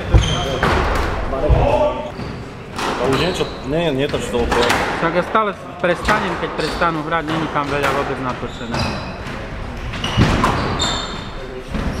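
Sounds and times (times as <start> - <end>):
shoes squeaking on wooden floor: 0.0 - 4.7, 6.0 - 12.0.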